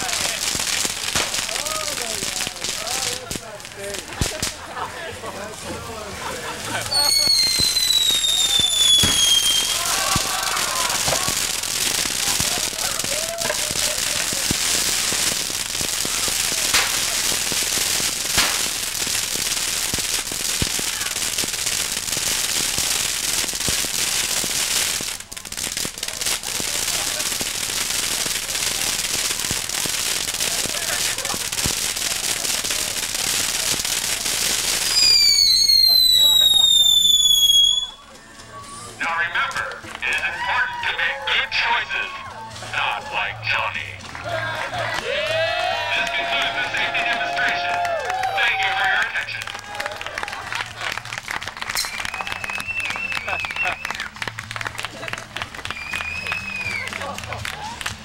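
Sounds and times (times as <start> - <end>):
firework pops and crackles: 0.0 - 5.8, 6.5 - 58.0
firework fountains hissing: 0.0 - 58.0
falling firework whistle: 6.9 - 15.4, 34.7 - 38.0, 51.8 - 54.1, 55.6 - 57.0.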